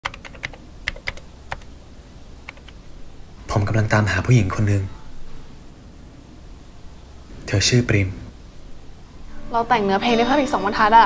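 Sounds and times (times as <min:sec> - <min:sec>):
typing on computer keyboard: 0:00.0 - 0:01.7, 0:02.4 - 0:02.8.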